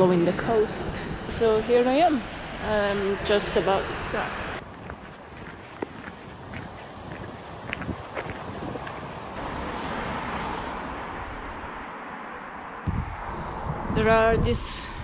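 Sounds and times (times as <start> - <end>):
wind rushing over microphone: 0.0 - 11.8, 12.8 - 15.0.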